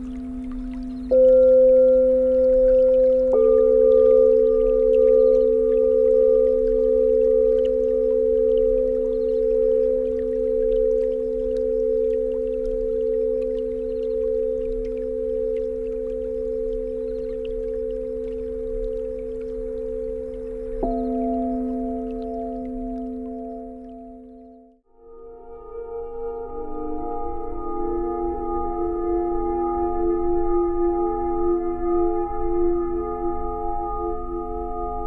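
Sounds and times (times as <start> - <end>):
singing bowls ringing: 0.0 - 35.0.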